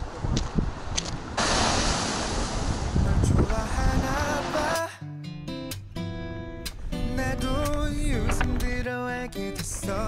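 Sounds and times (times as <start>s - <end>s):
wind on microphone: 0.0s - 4.5s
surf washing onto pebbles: 1.2s - 4.8s.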